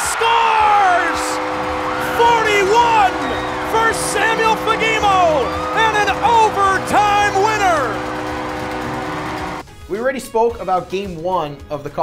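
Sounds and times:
crowd cheering: 0:00.0 - 0:09.6
excited shouting: 0:00.0 - 0:09.6
multi-tone goal horn: 0:00.0 - 0:09.6.

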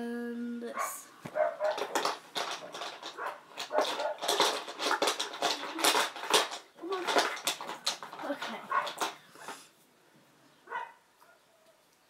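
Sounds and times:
glass bottles clinking: 0:01.4 - 0:09.2.

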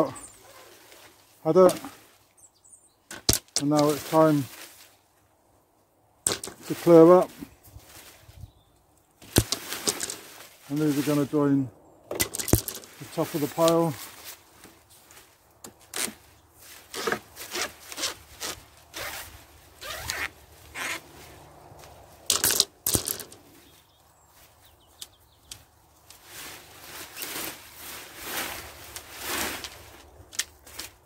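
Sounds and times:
leaves and stems rustling: 0:00.0 - 0:02.5, 0:03.2 - 0:31.0.

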